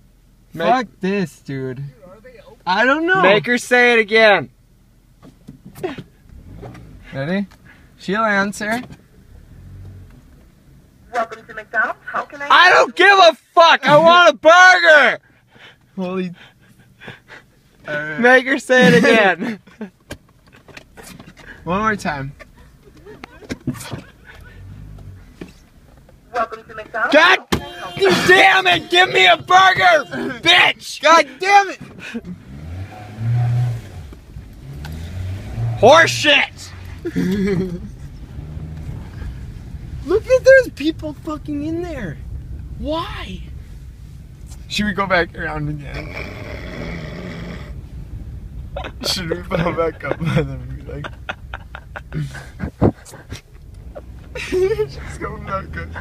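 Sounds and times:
car engine idling: 0.0 - 56.0.

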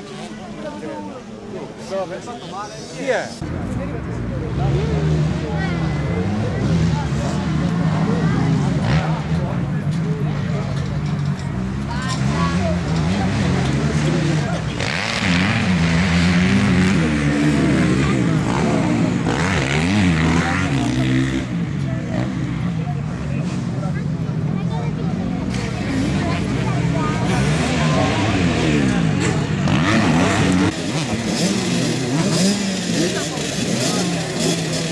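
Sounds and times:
dirt bikes idling and revving: 0.0 - 34.9.

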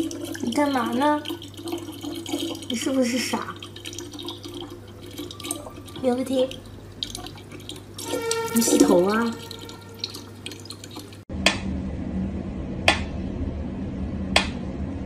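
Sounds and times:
tap water running into bottle: 0.0 - 11.2.

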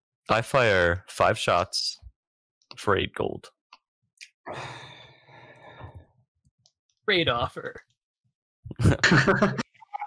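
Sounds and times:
person sighing: 4.5 - 5.0.

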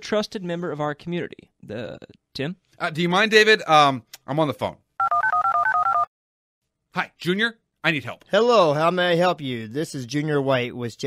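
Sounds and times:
telephone keypad dialing beeps: 5.0 - 6.1.

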